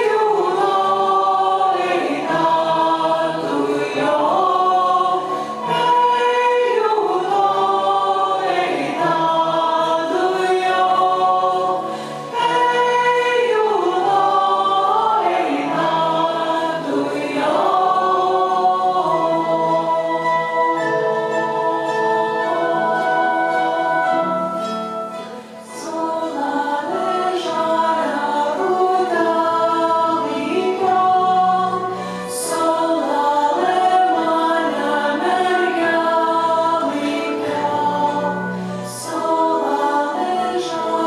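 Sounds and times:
choir singing: 0.0 - 41.0.

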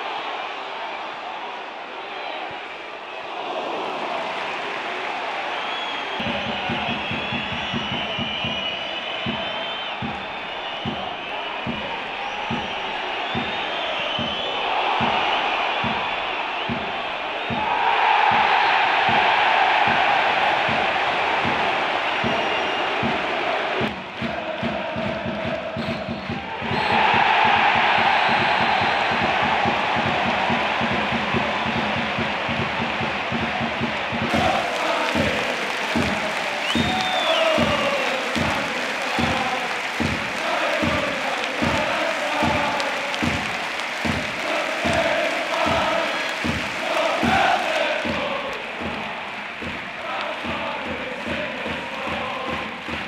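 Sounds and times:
crowd chanting and singing: 0.0 - 53.0
stadium crowd roaring: 0.0 - 53.0
music with steady beat: 27.6 - 53.0.

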